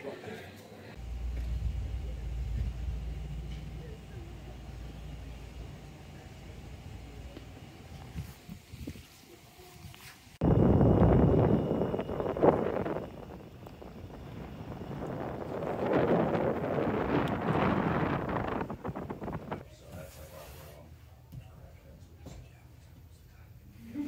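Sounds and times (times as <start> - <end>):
wind buffeting microphone: 10.4 - 19.6.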